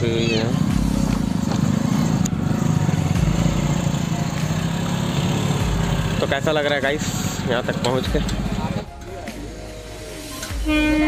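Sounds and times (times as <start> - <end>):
motorcycle engine running at low revs: 0.0 - 8.9.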